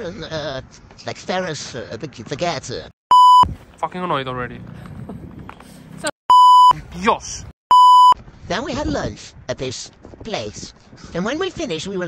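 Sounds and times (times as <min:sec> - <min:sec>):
censor bleep: 0:03.1 - 0:03.5, 0:06.3 - 0:06.8, 0:07.7 - 0:08.2.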